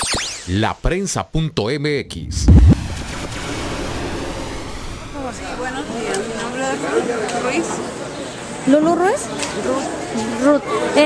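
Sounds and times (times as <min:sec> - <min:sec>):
steady rushing noise: 0:02.1 - 0:06.9.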